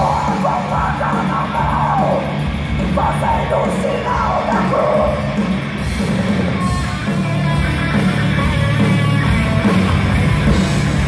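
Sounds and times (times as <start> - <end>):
distorted electric guitar: 0.0 - 11.0
heavy metal band playing live: 0.0 - 11.0.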